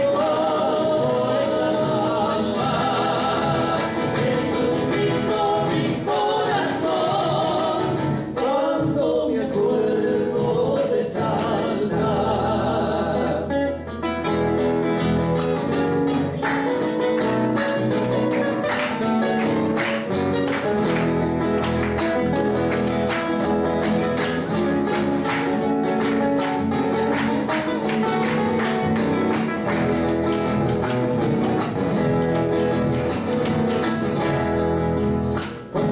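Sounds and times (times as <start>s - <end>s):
male voices singing in harmony: 0.0s - 13.6s
strummed acoustic guitars: 0.0s - 35.9s.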